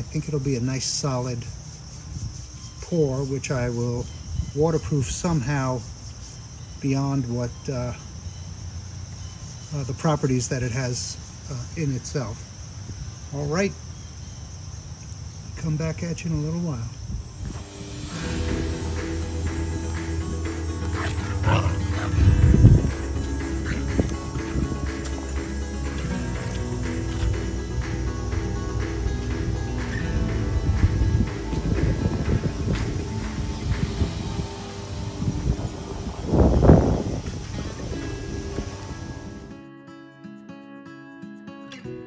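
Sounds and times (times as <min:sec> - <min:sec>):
background music: 0:17.5 - 0:42.0
dog growling: 0:18.2 - 0:26.1.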